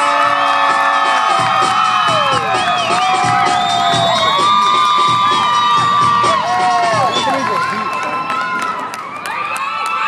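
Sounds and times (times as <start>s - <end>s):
crowd cheering and screaming: 0.0s - 10.0s.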